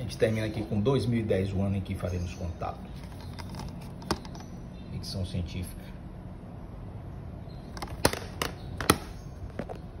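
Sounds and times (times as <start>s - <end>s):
plastic case clicking and knocking: 3.2s - 4.5s, 7.8s - 9.8s.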